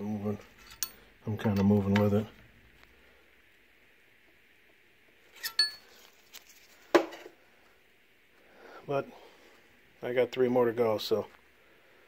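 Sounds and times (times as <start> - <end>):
metal parts clinking: 0.6 - 1.0, 5.4 - 5.9.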